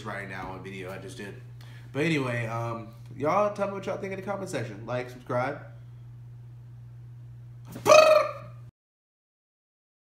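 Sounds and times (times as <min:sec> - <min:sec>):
steady low hum: 0:00.0 - 0:08.7
man shouting: 0:07.7 - 0:08.6.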